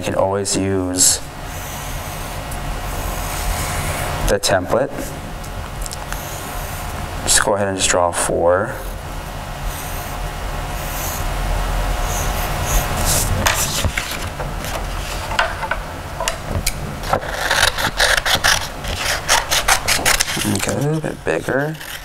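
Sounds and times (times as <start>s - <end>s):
pencil scratching on paper: 12.0s - 15.2s, 17.0s - 22.0s
scissors snipping paper: 17.0s - 22.0s.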